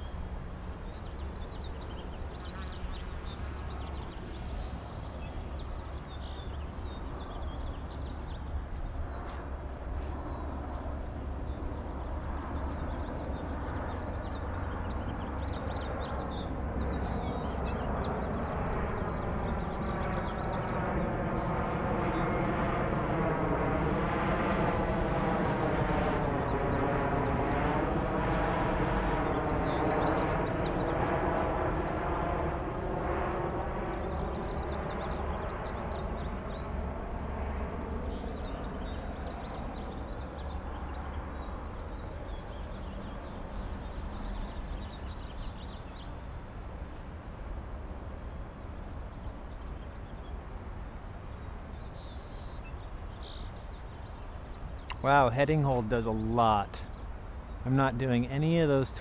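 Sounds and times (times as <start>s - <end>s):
airplane passing overhead: 0.0s - 59.0s.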